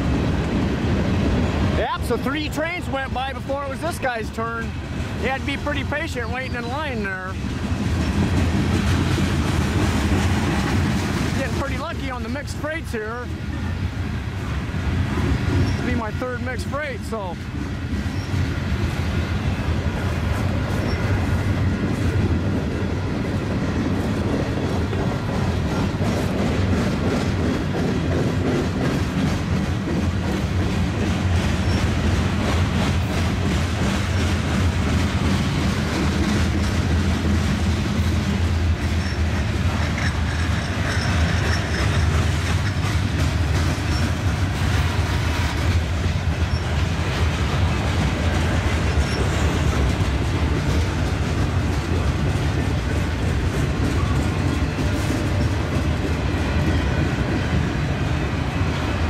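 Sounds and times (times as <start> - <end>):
freight train wheels rumbling: 0.0 - 59.0
wheels clicking over rail joints: 0.1 - 58.9.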